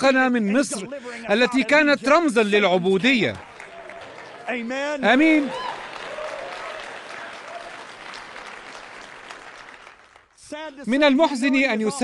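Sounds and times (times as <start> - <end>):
audience applauding: 3.1 - 10.4.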